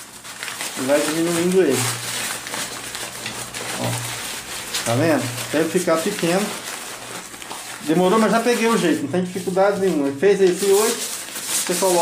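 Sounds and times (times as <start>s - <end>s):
nylon fabric rustling and crinkling: 0.0s - 12.0s.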